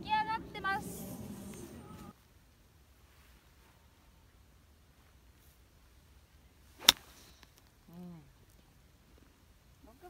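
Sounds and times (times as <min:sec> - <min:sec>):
golf club swish: 0:06.7 - 0:07.5.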